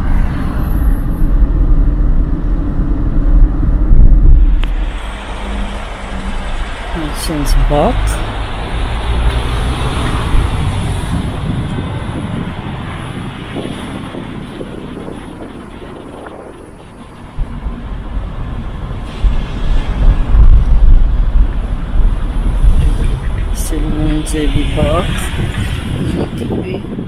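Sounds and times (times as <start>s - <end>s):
car engines: 0.0s - 27.0s
tyres on the road: 0.0s - 27.0s
wind buffeting microphone: 0.0s - 27.0s.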